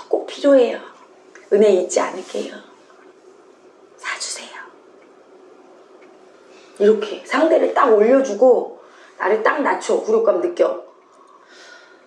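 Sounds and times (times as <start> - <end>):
woman whispering: 4.0 - 4.8.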